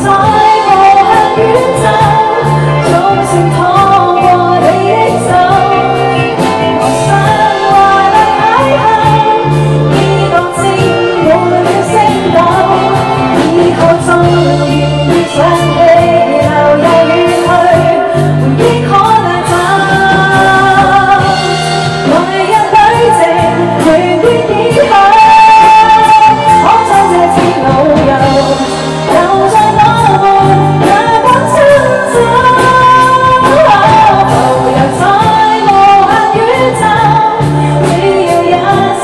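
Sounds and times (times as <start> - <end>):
band with steady drum beat: 0.0 - 39.0
woman singing into microphone: 0.0 - 39.0.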